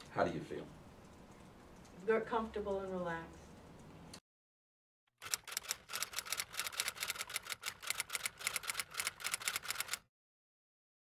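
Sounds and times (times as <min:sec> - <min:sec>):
fast typewriter key clicks: 0:05.2 - 0:10.0.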